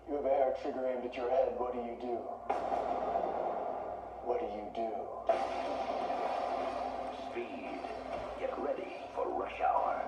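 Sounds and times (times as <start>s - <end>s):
trailer music hit: 2.5s - 4.3s, 5.3s - 8.6s.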